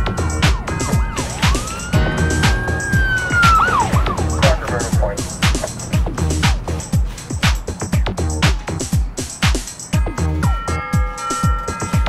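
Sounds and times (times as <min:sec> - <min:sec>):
electronic music with kick drum: 0:00.0 - 0:12.0
police siren wail: 0:00.0 - 0:12.0.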